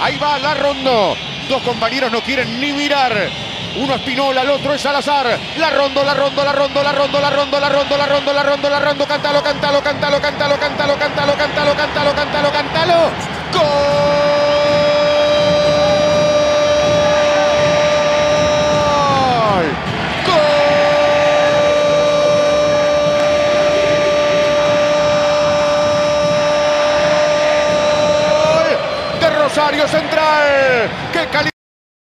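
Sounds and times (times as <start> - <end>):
crowd noise: 0.0 - 31.5.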